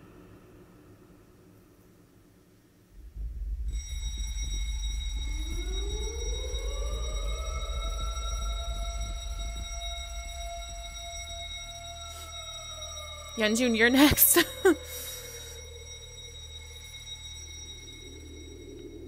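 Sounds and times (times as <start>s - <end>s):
deep rumble: 2.9s - 19.0s
high-pitched ringing tone: 2.9s - 19.0s
rising sliding tone: 3.0s - 14.1s.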